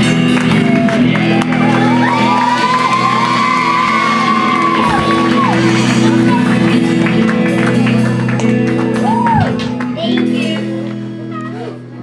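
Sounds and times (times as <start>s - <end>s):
band chord ringing out: 3.0s - 9.0s.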